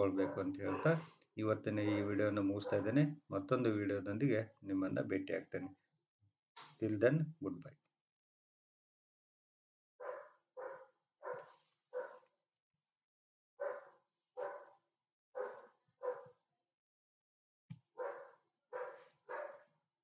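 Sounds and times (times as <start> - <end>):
dog barking: 0.1 - 1.0, 1.8 - 3.0, 10.0 - 12.2, 13.6 - 14.8, 15.4 - 16.3, 18.0 - 19.7.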